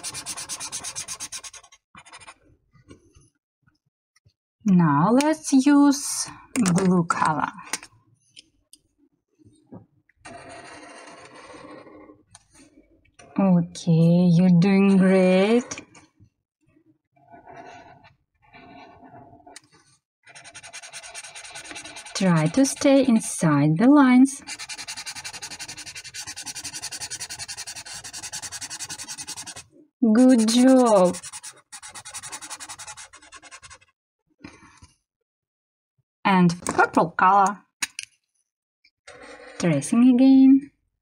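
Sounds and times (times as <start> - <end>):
marker scraping across paper: 0.0 - 2.4, 17.2 - 23.3, 24.4 - 33.9.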